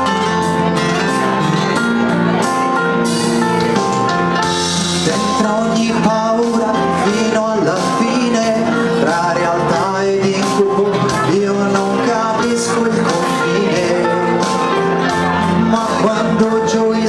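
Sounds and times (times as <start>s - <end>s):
instrumental backing: 0.0s - 17.0s
man singing pop ballad: 4.4s - 17.0s.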